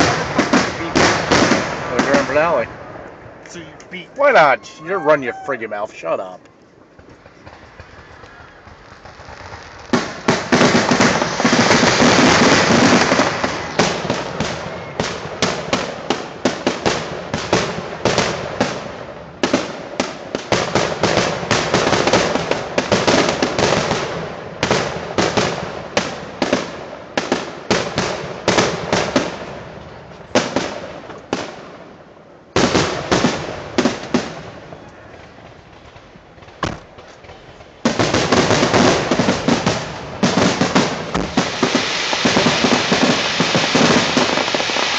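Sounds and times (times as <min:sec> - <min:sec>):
fireworks shells bursting: 0:00.0 - 0:16.9, 0:35.2 - 0:44.9.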